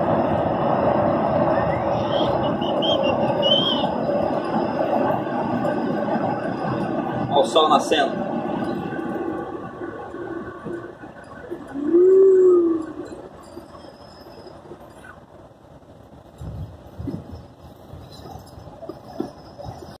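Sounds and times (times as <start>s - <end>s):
drawn-out hoot: 11.5s - 13.3s.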